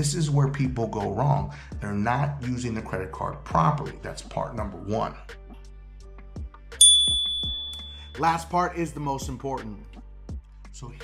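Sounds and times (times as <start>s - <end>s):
quiet background music: 0.0s - 11.0s
bright bell-like ding: 6.8s - 8.2s.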